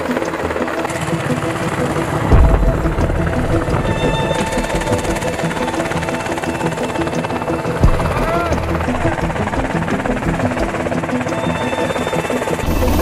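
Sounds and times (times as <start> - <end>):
helicopter rotor and engine: 0.0 - 13.0
voices: 0.0 - 13.0.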